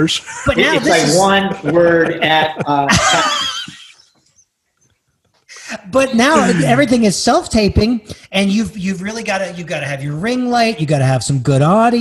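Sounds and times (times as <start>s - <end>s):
man laughing: 0.1s - 4.0s, 5.6s - 6.9s.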